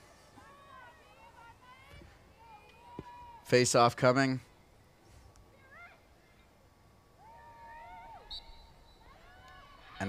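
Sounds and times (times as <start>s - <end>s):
distant shouts: 0.0s - 4.5s, 5.4s - 10.0s.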